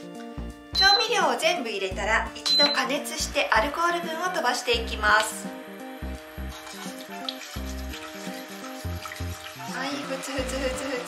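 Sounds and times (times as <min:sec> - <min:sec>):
background music: 0:00.0 - 0:11.0
liquid simmering and sizzling: 0:04.3 - 0:11.0
wooden utensil stirring: 0:06.5 - 0:09.9.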